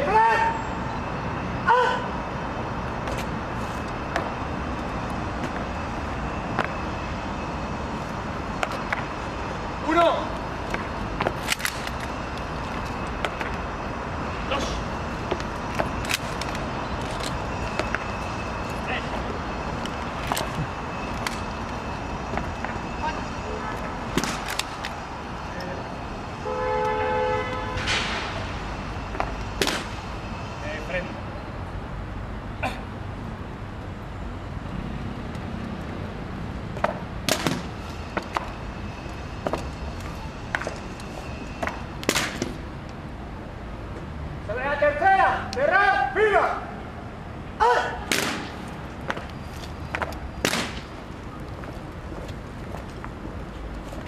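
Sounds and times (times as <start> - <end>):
person shouting drill commands: 0.0 - 0.6.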